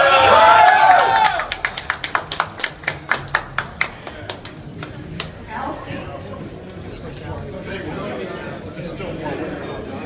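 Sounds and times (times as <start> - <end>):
people clapping: 0.0 - 5.5.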